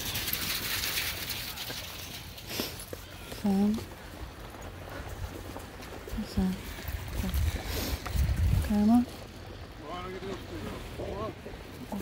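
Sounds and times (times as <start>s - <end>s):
wind and surf hiss: 3.8s - 12.0s.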